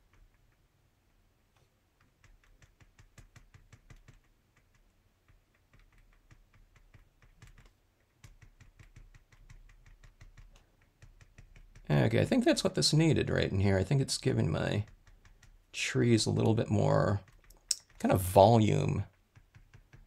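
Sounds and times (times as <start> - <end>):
pen tip tapping on paper: 2.0 - 11.9, 19.1 - 20.0.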